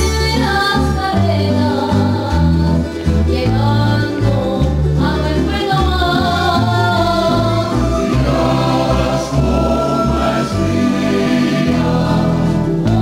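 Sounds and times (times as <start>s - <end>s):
acoustic guitars: 0.0s - 13.0s
lute: 0.0s - 13.0s
men singing together: 6.3s - 13.0s
flute melody: 6.8s - 12.8s.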